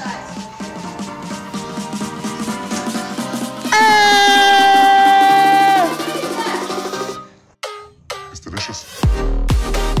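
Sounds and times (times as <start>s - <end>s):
electronic dance music: 0.0s - 7.2s.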